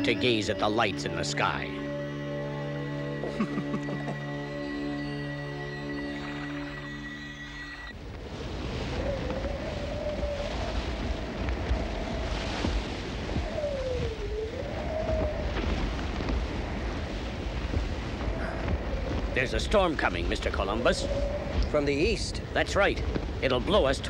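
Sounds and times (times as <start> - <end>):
soft music: 0.0 - 8.0
cartoon wind howling: 7.2 - 24.0.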